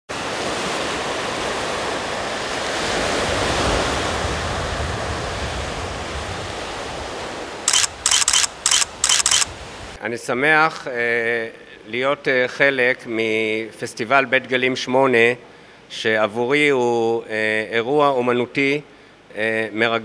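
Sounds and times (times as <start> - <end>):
sea surf washing in: 0.1 - 10.0
camera shutter clicks: 7.7 - 9.5.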